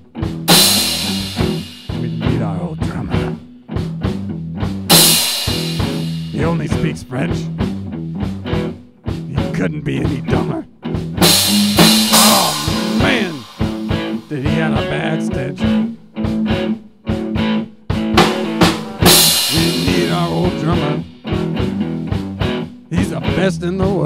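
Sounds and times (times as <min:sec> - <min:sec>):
drum kit: 0:00.0 - 0:24.0
rock guitar: 0:00.0 - 0:24.0
cymbal crashes: 0:00.5 - 0:02.1, 0:04.9 - 0:06.5, 0:11.2 - 0:14.4, 0:18.2 - 0:20.7.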